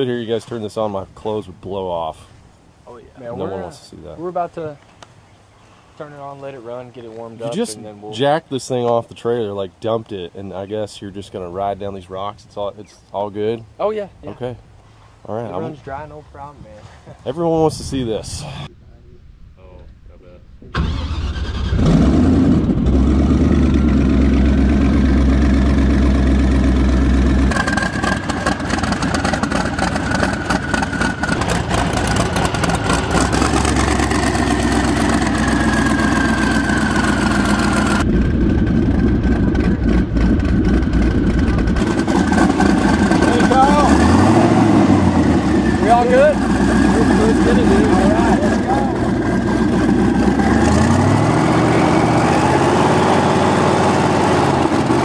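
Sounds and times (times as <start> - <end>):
airboat engine running: 22.8 - 55.0.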